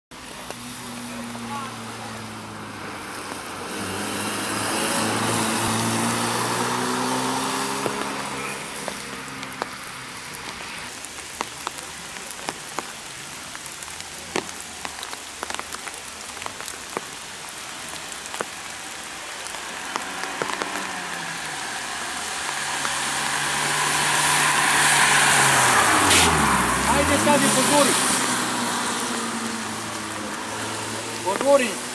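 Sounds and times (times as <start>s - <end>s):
car engine revving: 0.2s - 10.9s, 18.0s - 31.9s
car passing by: 0.2s - 11.4s, 14.4s - 31.9s
tyre hiss on wet road: 0.2s - 31.9s.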